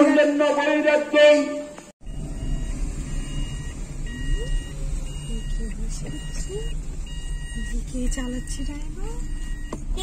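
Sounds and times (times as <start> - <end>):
car cabin rumble: 2.0 - 10.0
car warning chime beeping: 2.0 - 10.0.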